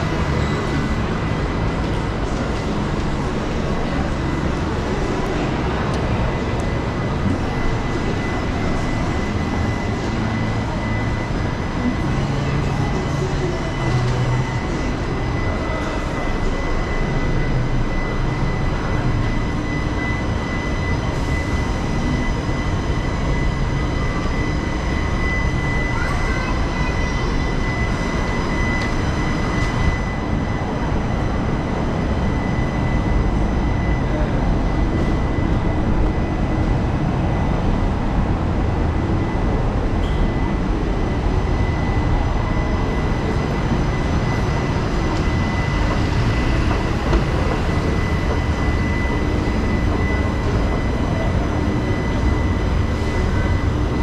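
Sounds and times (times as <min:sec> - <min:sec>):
faint constant high whine: 0:00.0 - 0:54.0
low rumble of traffic: 0:00.0 - 0:54.0.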